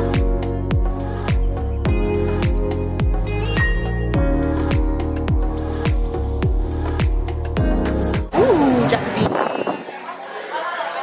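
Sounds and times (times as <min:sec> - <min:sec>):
background chatter: 0:08.3 - 0:11.0.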